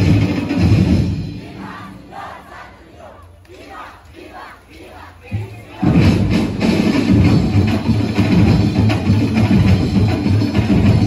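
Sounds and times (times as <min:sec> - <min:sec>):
drumming: 0:00.0 - 0:02.6, 0:03.6 - 0:11.0
group of voices chanting: 0:01.3 - 0:06.3.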